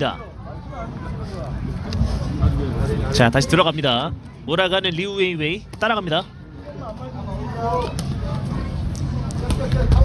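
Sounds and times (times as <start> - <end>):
faint crowd voices: 0.0 - 10.0.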